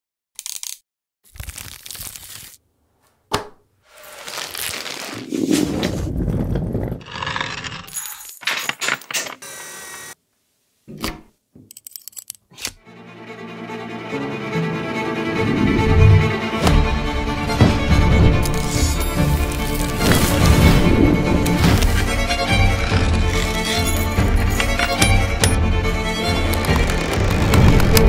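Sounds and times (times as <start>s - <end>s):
rustling crackling bursts: 1.3s - 3.0s, 3.8s - 7.8s, 18.4s - 24.7s, 26.5s - 28.0s
bowed string music: 12.8s - 28.0s.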